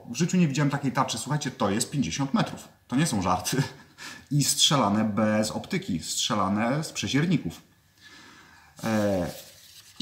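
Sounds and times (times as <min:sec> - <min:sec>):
man's voice: 0:08.8 - 0:09.5
paper sheets rustling: 0:08.8 - 0:10.0.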